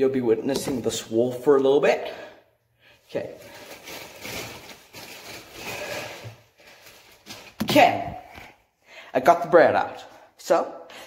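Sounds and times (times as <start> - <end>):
rustling and handling noise: 3.0 - 8.6.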